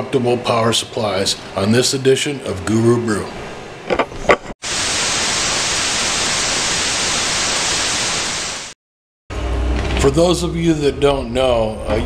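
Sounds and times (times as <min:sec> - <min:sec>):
tv static hiss: 0:04.6 - 0:08.8.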